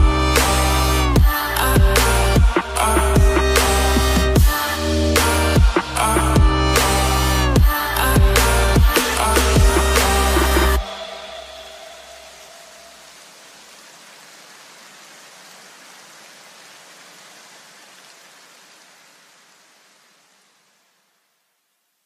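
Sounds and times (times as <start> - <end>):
low bass tail: 0.0 - 12.2
electronic background music: 0.0 - 13.0
noise hiss: 0.0 - 22.0.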